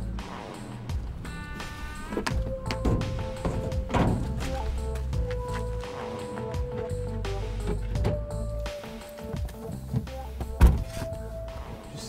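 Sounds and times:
film score with held tones: 0:00.0 - 0:12.0
car door shutting: 0:02.0 - 0:05.1, 0:06.7 - 0:11.2.

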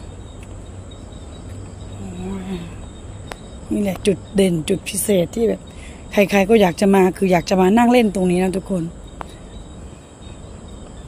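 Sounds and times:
crickets trilling: 0:00.0 - 0:11.0
woman speaking: 0:02.0 - 0:02.8, 0:03.7 - 0:09.0.

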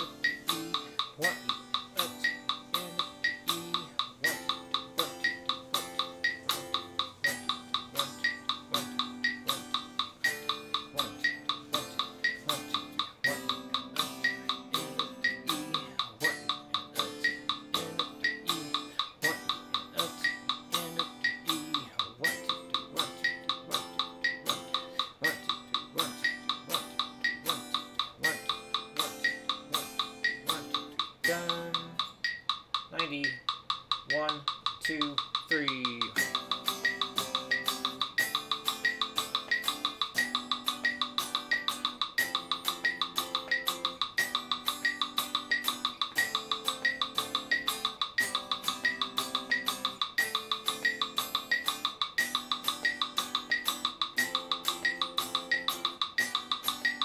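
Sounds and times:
electric guitar chords: 0:00.0 - 0:32.2, 0:35.7 - 0:57.0
metronome clicking: 0:00.0 - 0:57.0
sliding guitar notes: 0:00.0 - 0:57.0.

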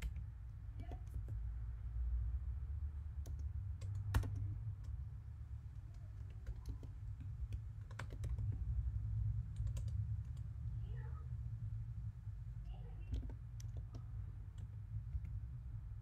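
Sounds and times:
steady low hum: 0:00.0 - 0:16.0
typing on computer keyboard: 0:03.1 - 0:05.1, 0:05.7 - 0:08.7, 0:09.5 - 0:10.5, 0:13.1 - 0:15.4.

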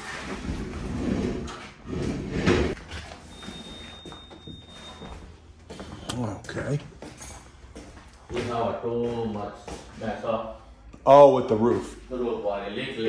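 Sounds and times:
door opening with scraping: 0:00.0 - 0:05.1.

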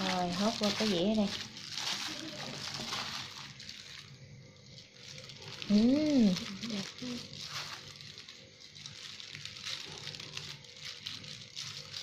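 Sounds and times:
plastic glove crinkling: 0:00.0 - 0:12.0.

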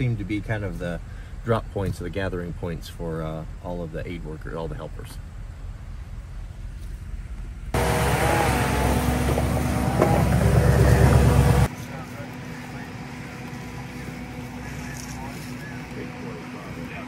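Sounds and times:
diesel engine running loud: 0:07.7 - 0:17.0.

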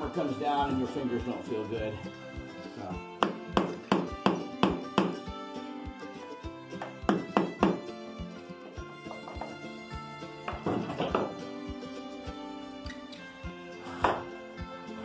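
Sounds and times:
background music: 0:00.0 - 0:15.0
hammer knocking on screwdriver: 0:03.2 - 0:05.2, 0:06.8 - 0:07.8, 0:10.4 - 0:11.3.

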